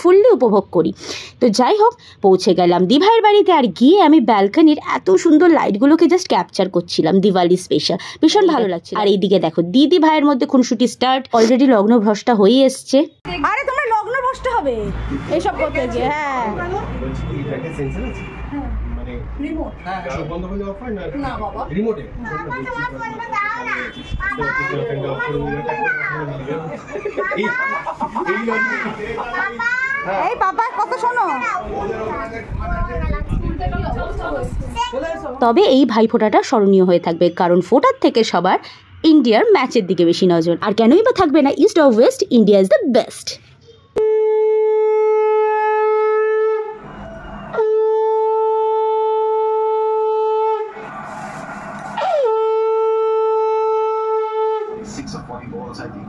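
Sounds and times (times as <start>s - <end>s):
people talking: 0.0s - 18.8s, 19.4s - 43.4s, 54.7s - 56.0s
child's voice: 22.2s - 30.2s, 30.8s - 35.3s
conch shell blasts: 44.0s - 54.9s.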